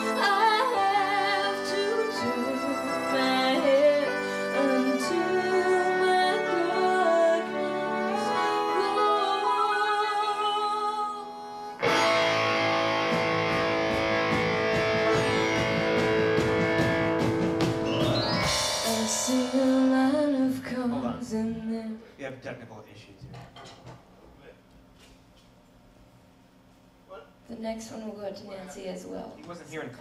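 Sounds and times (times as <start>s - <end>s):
live band playing: 0.0s - 9.2s, 11.8s - 21.5s
person singing: 0.0s - 11.3s, 18.8s - 22.0s
guitar: 0.0s - 22.0s.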